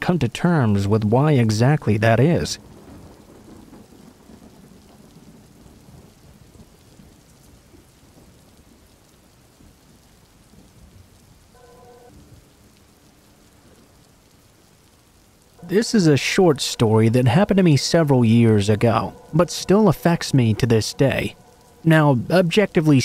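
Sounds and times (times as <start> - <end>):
faint steady rain: 0.0 - 23.0
low thunder rumble: 2.1 - 23.0.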